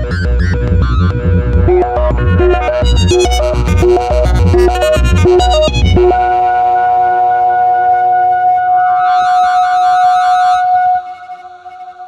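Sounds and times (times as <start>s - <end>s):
synthesizer sustained note: 0.0s - 12.0s.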